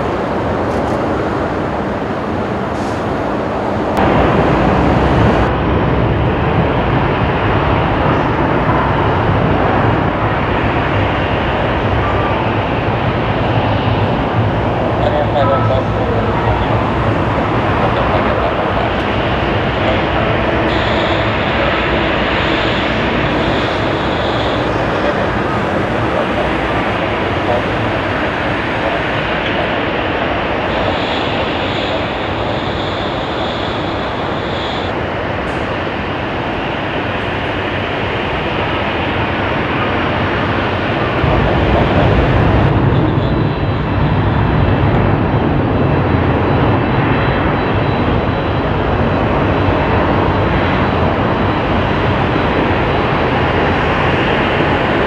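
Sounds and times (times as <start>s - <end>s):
jet airliner deep rumble: 0.0s - 55.0s
jet airliner engines roaring: 0.0s - 55.0s.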